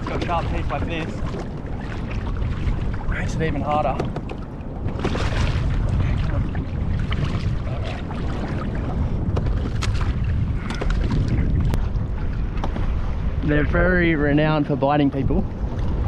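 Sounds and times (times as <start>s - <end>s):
water slapping against hull: 0.0s - 16.0s
wind buffeting microphone: 0.0s - 16.0s.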